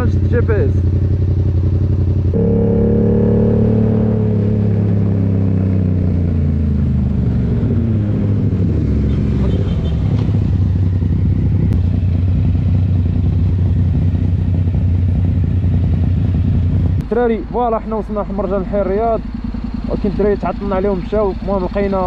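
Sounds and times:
motorcycle engine: 0.0 - 22.0.

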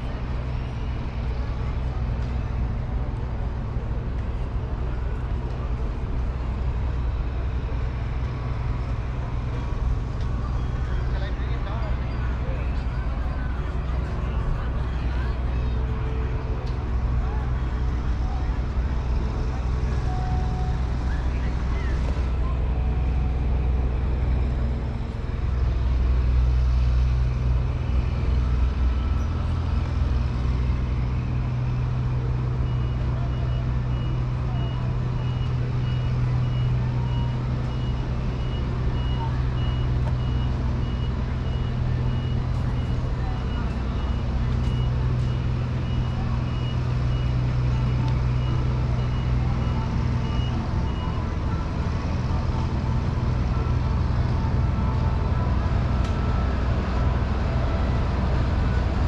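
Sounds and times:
reversing alarm beeps: 32.6 - 53.9.

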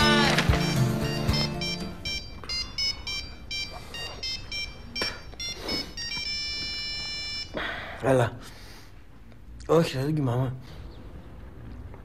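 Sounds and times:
background music: 0.0 - 5.1
phone ringtone beeps: 0.0 - 7.6.

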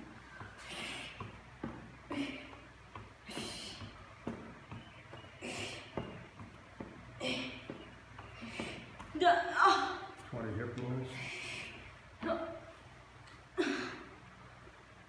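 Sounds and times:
woman breathing hard: 0.4 - 4.4, 5.4 - 6.2, 7.2 - 9.1, 11.1 - 12.1.

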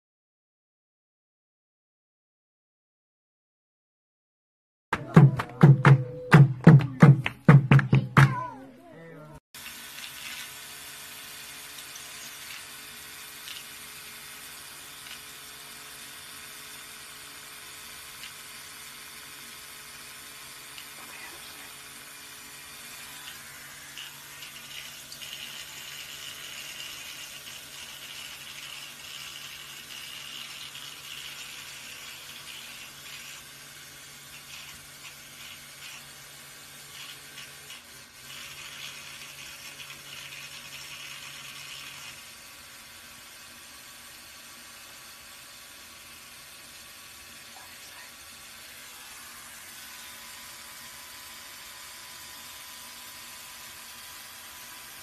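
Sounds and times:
electric toothbrush motor hum: 9.6 - 55.0
toothbrush buzzing against feathers: 9.6 - 55.0.

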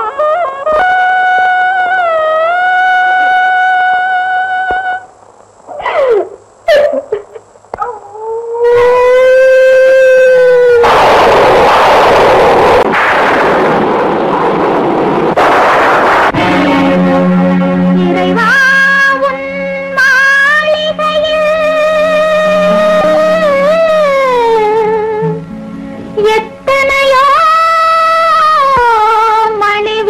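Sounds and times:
woman sobbing: 0.0 - 2.3, 5.7 - 10.8
woman wailing: 5.7 - 10.8
loud hissing rush: 8.6 - 24.2.

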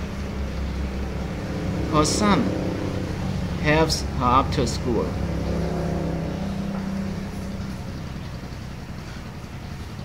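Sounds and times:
motor hum: 0.0 - 10.0.

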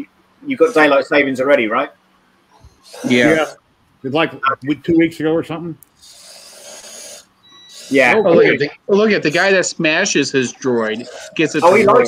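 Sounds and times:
small motors whirring: 2.5 - 3.6, 5.8 - 8.7, 9.3 - 12.0
thin high whine: 2.5 - 3.6, 6.0 - 12.0
rasping motor run: 2.6 - 3.6, 5.9 - 8.6, 10.0 - 12.0.

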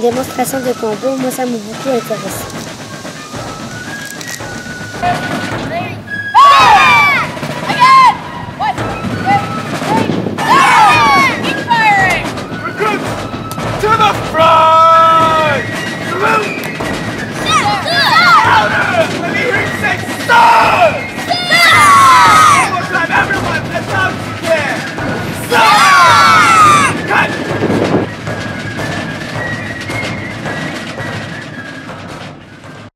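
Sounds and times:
voices calling out: 0.0 - 31.8
shouted drill commands: 5.0 - 13.1, 13.7 - 16.6, 17.3 - 27.4.

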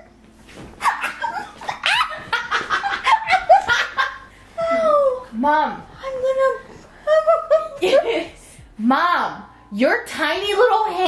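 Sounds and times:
women shrieking and laughing: 0.8 - 5.2.

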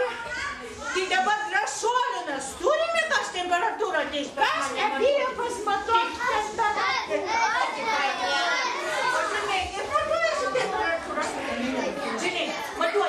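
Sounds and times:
children calling out and chattering: 0.0 - 1.3, 4.5 - 13.0.

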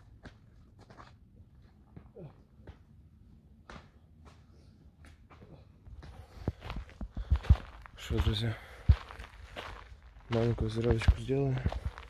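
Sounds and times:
footsteps thudding: 6.0 - 12.0.

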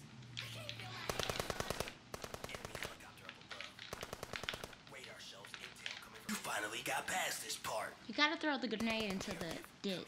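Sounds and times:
machine-gun fire: 1.0 - 3.1, 3.9 - 5.0, 8.8 - 9.7.

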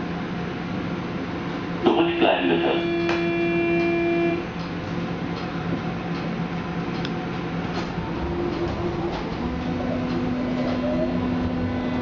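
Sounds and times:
door warning buzzing tone: 2.5 - 4.5, 7.9 - 12.0.

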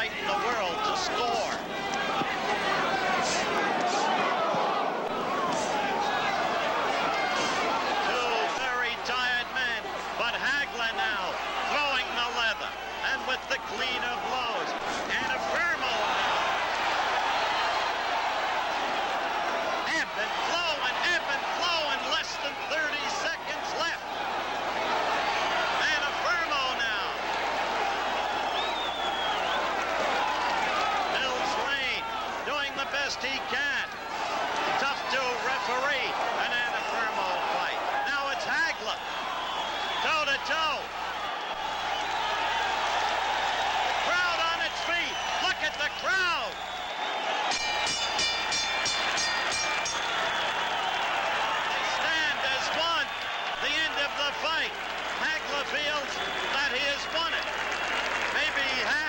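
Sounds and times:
crowd shouting and cheering: 0.0 - 59.0
ring bell clanging rapidly: 47.5 - 50.6.

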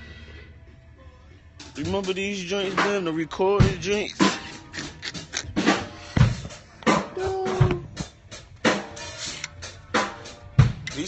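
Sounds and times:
kick drum hits: 6.2 - 8.2.

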